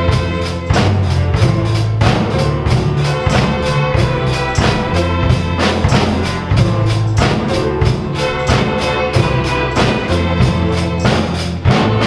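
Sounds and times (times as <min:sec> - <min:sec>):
steady drum beat: 0:00.0 - 0:12.0
sustained bass notes: 0:01.3 - 0:12.0
bowed strings: 0:01.6 - 0:12.0.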